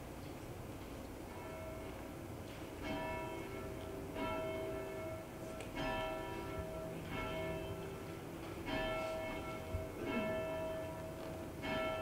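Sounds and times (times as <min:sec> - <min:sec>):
church bell tolling: 0:01.3 - 0:12.0.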